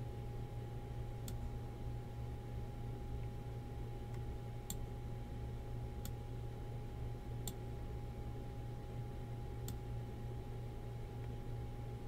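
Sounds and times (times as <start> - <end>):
low electrical hum: 0.0 - 12.0
computer mouse click: 1.2 - 1.4, 6.0 - 6.2, 7.4 - 7.6, 9.6 - 9.8.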